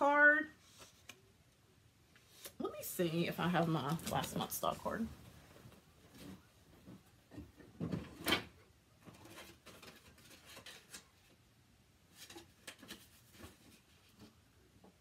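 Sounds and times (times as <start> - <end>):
rustles and knocks of rummaging: 3.5 - 11.2.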